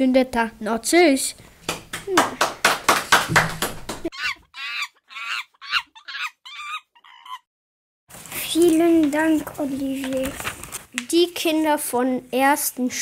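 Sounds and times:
short chicken-like calls: 0:04.1 - 0:07.5.

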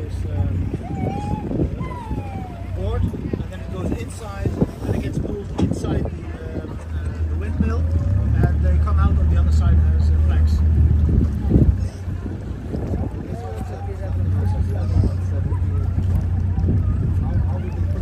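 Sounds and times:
low engine drone: 0:00.0 - 0:03.7
people talking: 0:00.0 - 0:18.0.

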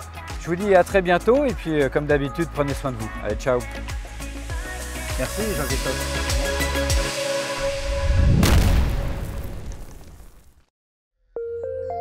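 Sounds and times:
cinematic boom with rumbling tail: 0:07.8 - 0:10.4.

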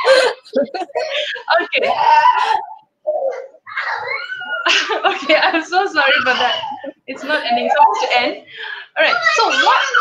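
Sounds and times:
person laughing: 0:00.0 - 0:01.9
background laughter: 0:00.0 - 0:02.9.

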